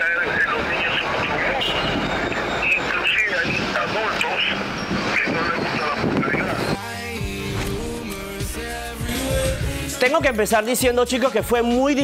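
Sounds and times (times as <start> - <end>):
man talking: 0.0 - 1.8, 2.6 - 6.8
street traffic noise: 0.0 - 11.4.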